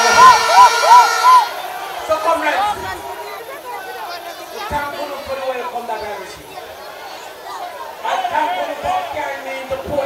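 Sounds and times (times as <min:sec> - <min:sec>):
man speaking over public address: 0:02.0 - 0:03.0, 0:04.1 - 0:06.6, 0:08.0 - 0:10.0.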